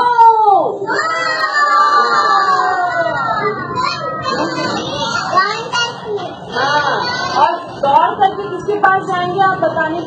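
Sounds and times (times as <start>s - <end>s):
children shouting: 0.8s - 7.5s.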